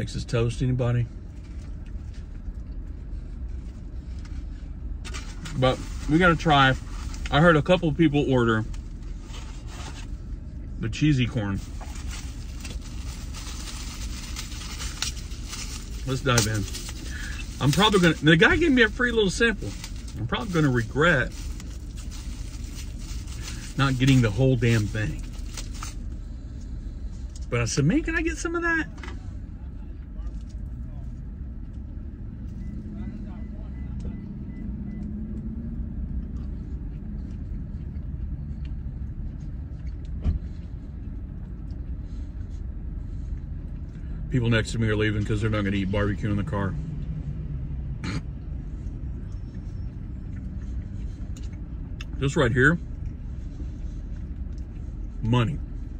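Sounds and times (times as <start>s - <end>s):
car idling inside cabin: 0.0s - 55.9s.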